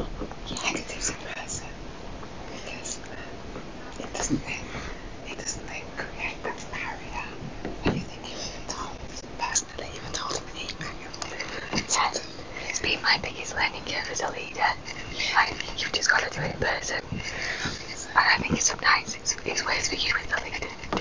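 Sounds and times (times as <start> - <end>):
people whispering and talking low: 0.0 - 1.8, 2.4 - 21.0.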